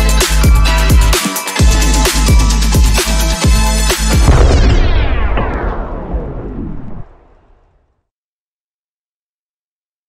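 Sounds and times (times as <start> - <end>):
electronic drum and bass music: 0.0 - 5.1
deep boom: 1.6 - 7.9.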